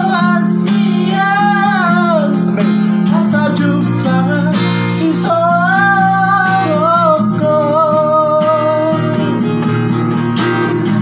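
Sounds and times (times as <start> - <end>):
woman and man singing duet: 0.0 - 9.4
acoustic guitar strumming: 0.0 - 11.0.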